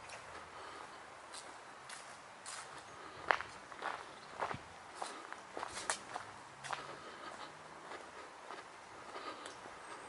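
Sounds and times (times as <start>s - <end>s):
footsteps scuffing: 1.3s - 9.2s.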